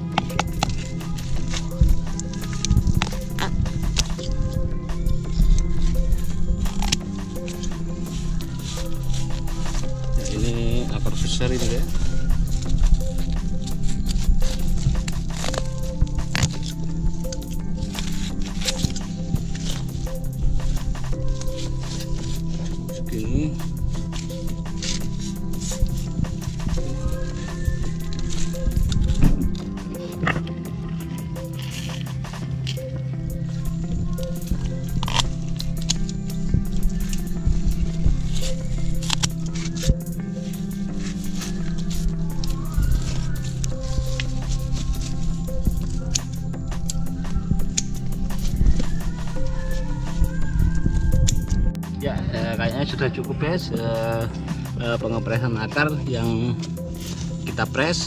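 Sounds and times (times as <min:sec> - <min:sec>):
pruning shears snipping: 0:00.0 - 0:50.4
background music: 0:00.0 - 0:58.0.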